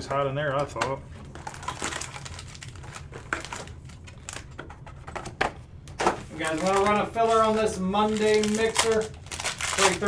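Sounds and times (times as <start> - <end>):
foil packs crinkling and clicking: 0.6 - 4.6, 5.9 - 10.0.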